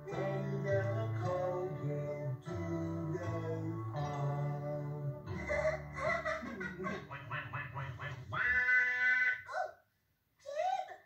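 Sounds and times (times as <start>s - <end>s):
puppets chattering gibberish: 5.4s - 9.8s.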